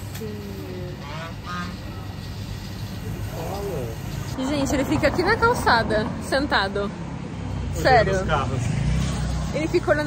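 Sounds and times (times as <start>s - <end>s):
road traffic hum: 0.0s - 10.0s.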